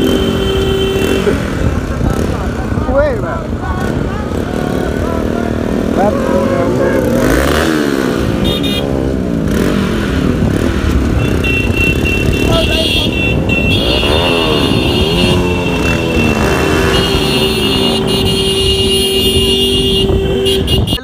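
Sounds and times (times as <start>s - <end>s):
motorcycle engines revving: 0.0s - 21.0s
wind noise on microphone: 10.0s - 21.0s.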